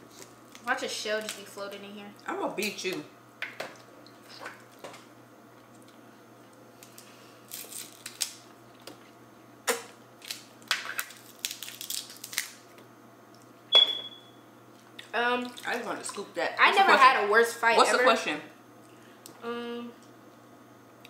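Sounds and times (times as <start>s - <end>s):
crab shells cracking: 6.8s - 9.0s, 9.7s - 12.8s
sharp click with ring: 13.7s - 14.3s.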